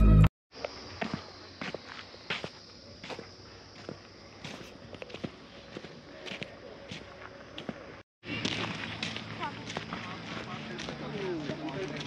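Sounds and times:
footsteps on dirt road: 0:00.6 - 0:12.0.

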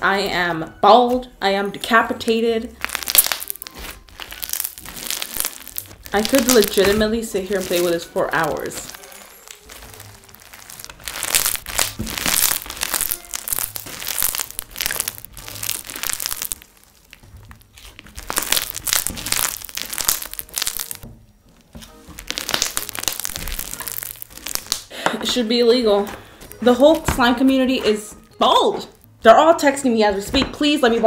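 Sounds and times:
faint background music: 0:00.0 - 0:31.0
crunchy slime crackling and popping: 0:02.7 - 0:25.0.

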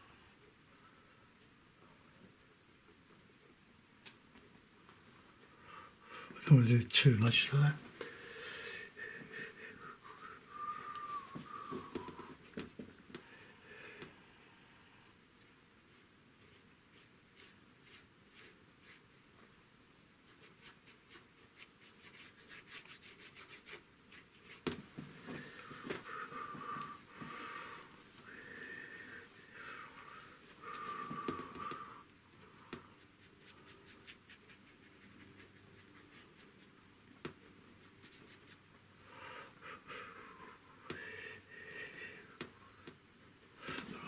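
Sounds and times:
wheezy breathing: 0:08.0 - 0:12.3, 0:25.2 - 0:32.9, 0:39.0 - 0:42.8
paintbrush scratching on panel: 0:15.4 - 0:19.1, 0:20.2 - 0:25.5, 0:32.6 - 0:36.8.

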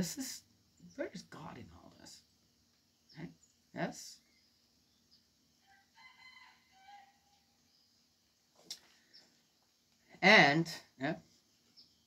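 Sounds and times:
rooster crowing: 0:05.6 - 0:07.5.

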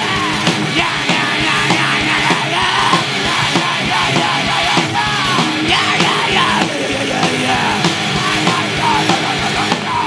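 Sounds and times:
harsh shouted vocals: 0:00.0 - 0:10.0
heavy metal band playing: 0:00.0 - 0:10.0.

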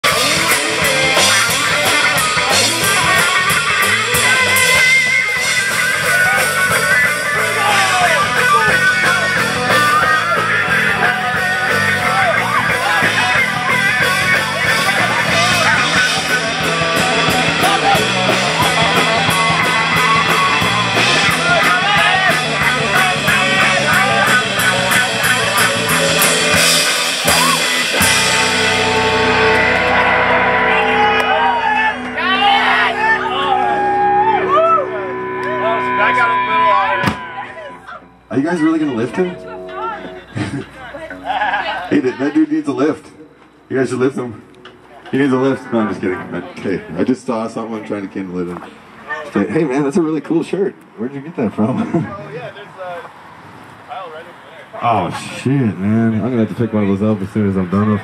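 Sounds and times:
rock drums: 0:00.0 - 0:47.6
electric guitars: 0:00.0 - 0:49.7.

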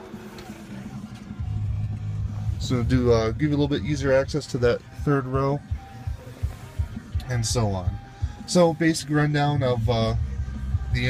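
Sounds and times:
steady low hum: 0:00.0 - 0:09.0
faint music: 0:00.0 - 0:11.0.

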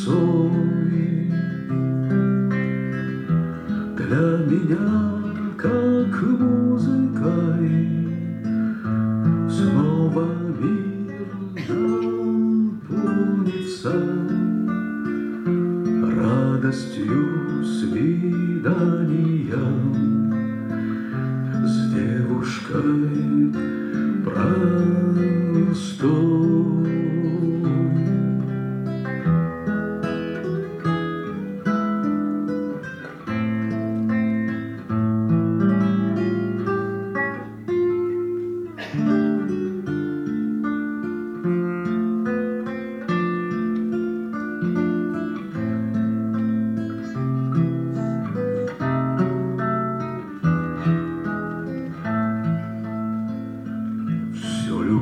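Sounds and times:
man singing: 0:00.0 - 0:02.6, 0:03.8 - 0:08.8, 0:09.4 - 0:28.5, 0:54.2 - 0:55.0
acoustic guitar playing: 0:00.0 - 0:55.0.

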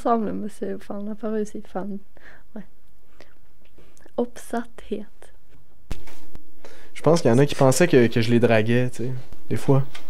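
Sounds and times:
person breathing: 0:02.2 - 0:04.0, 0:06.6 - 0:07.0.

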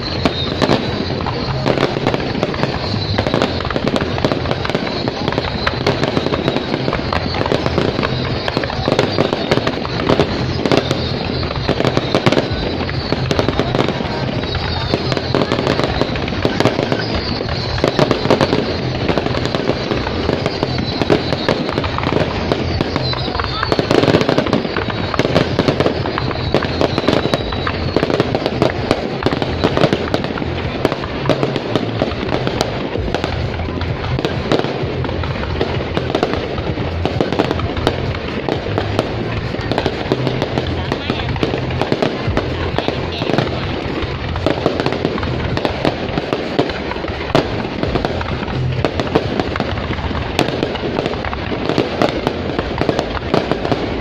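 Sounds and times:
fireworks bursting and crackling: 0:00.0 - 0:54.0
fireworks whistling: 0:00.0 - 0:54.0.

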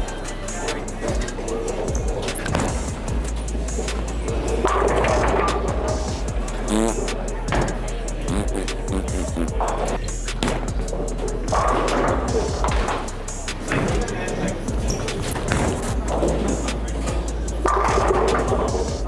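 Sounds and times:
music: 0:00.0 - 0:19.0
voices: 0:00.0 - 0:19.0.

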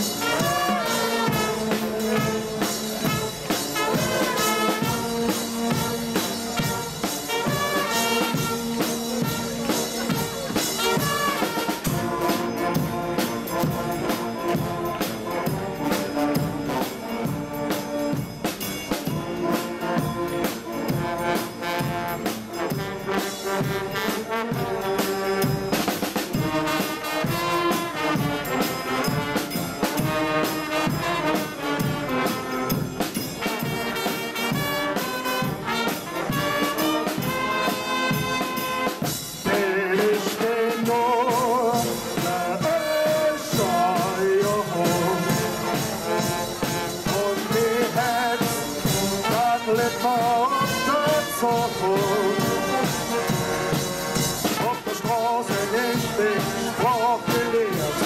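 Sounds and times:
bass drum and snare drum: 0:00.0 - 0:58.0
trumpets and trombones: 0:00.0 - 0:58.0.

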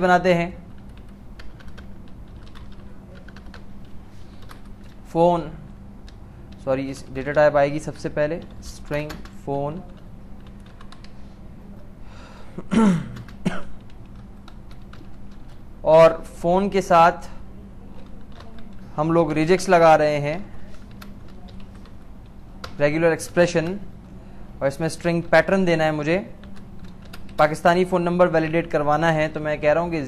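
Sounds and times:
steady low hum: 0:00.0 - 0:30.0
man talking: 0:27.4 - 0:30.0.

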